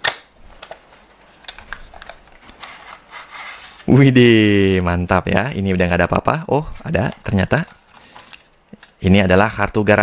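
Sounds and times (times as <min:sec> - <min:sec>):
box flap click: 0:00.0 - 0:00.8.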